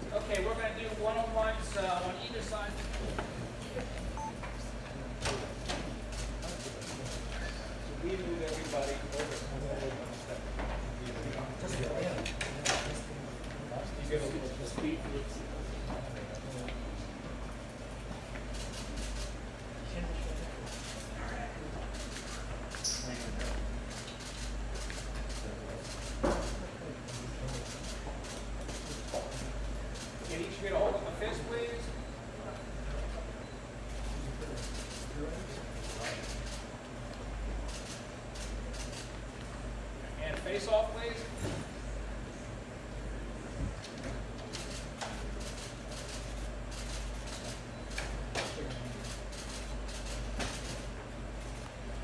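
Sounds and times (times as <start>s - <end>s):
murmur of voices: 0.0s - 52.0s
steady low hum: 0.0s - 52.0s
camera shutters clicking: 44.5s - 50.9s.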